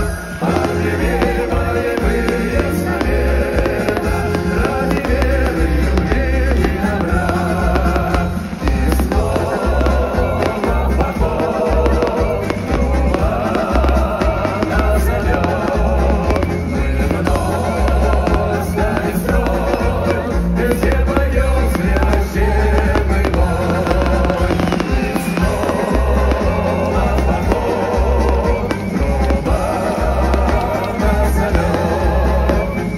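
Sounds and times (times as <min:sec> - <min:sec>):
fireworks bursting and crackling: 0:00.0 - 0:32.9
loud music with pulsing bass: 0:00.0 - 0:32.9
person singing: 0:00.0 - 0:32.9.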